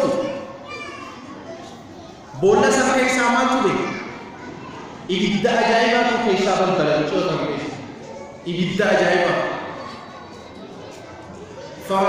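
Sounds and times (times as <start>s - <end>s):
man's amplified voice: 0.0s - 0.4s, 2.3s - 4.1s, 5.1s - 9.9s, 11.8s - 12.0s
faint children's voices: 0.0s - 12.0s.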